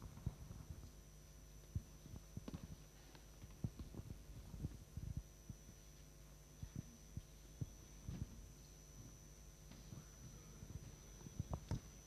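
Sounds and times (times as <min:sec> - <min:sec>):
electrical hum: 0:00.0 - 0:12.0
thin high whine: 0:00.0 - 0:12.0
soft low thumps: 0:01.7 - 0:05.8, 0:06.6 - 0:12.0.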